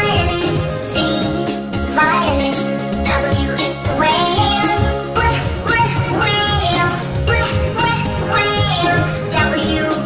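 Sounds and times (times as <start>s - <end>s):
backing music: 0.0s - 10.0s
child singing: 0.0s - 10.0s.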